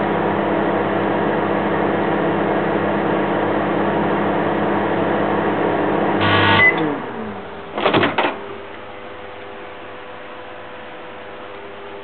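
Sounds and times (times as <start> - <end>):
microwave buzz: 0.0 - 12.0
microwave oven humming: 0.0 - 12.0
short high beep: 6.2 - 6.8.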